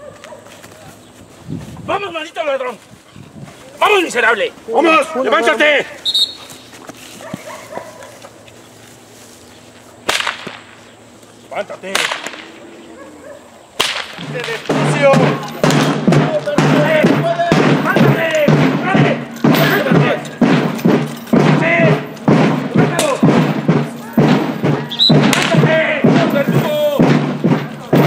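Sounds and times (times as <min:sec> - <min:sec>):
slow drumbeat: 0:14.2 - 0:28.0.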